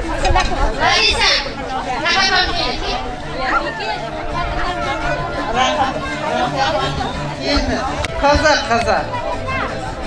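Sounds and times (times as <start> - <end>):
women talking in a crowd: 0.0 - 10.0.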